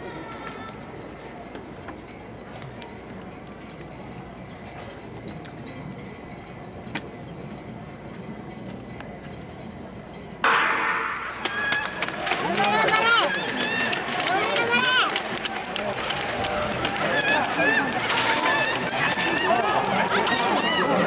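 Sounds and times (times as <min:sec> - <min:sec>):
spectators shouting and cheering: 0:10.5 - 0:21.0.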